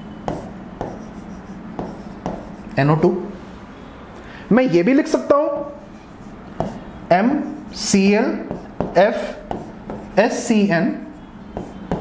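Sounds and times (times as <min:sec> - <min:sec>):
marker writing on whiteboard: 0:00.2 - 0:02.8, 0:05.5 - 0:12.0.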